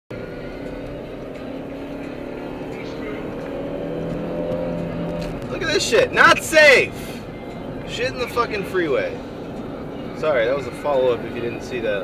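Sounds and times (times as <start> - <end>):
car engine and tyre drone: 0.1 - 12.0.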